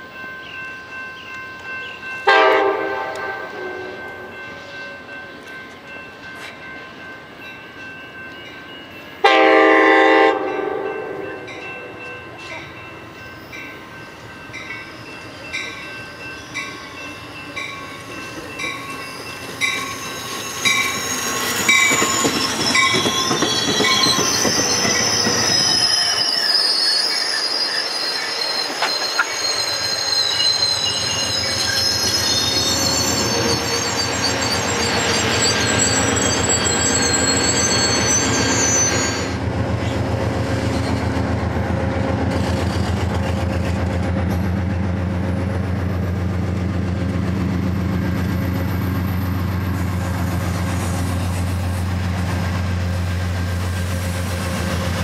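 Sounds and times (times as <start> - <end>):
train bell ringing: 0.0 - 41.2, 42.3 - 54.8
diesel locomotive engine rumble: 0.9 - 55.0
train horn blast: 2.2 - 4.4, 9.2 - 11.9
train wheels squealing and clattering: 11.3 - 55.0.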